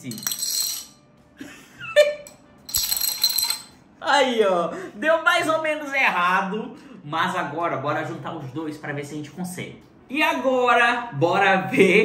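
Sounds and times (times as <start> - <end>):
plastic dominoes clattering: 0.0 - 0.9, 2.7 - 3.7.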